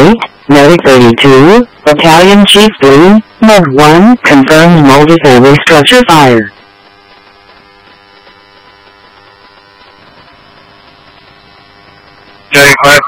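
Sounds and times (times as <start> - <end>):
loud radio transmission burst: 0.0 - 13.0
radio static hiss and hum: 0.0 - 13.0
steady electronic tones: 0.0 - 13.0.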